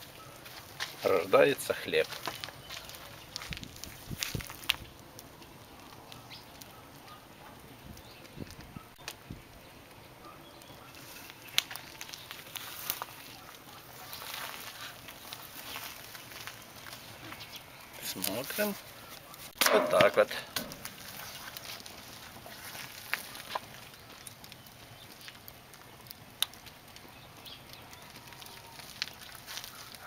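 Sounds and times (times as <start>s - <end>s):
wood fire crackling: 0.0s - 30.0s.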